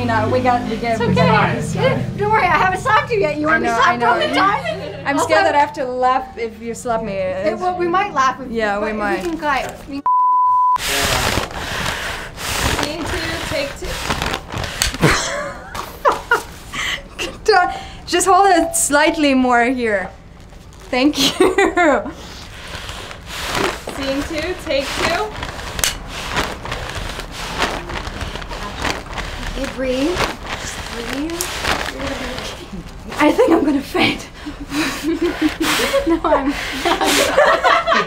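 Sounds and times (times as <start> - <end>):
paper bag crinkling: 10.8 - 15.4, 20.3 - 21.5, 22.2 - 33.5
rustling and handling noise: 10.8 - 16.8, 20.2 - 33.8.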